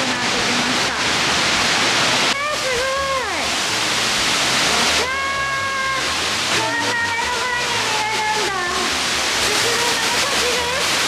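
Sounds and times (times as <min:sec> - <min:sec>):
waterfall rushing: 0:00.0 - 0:11.0.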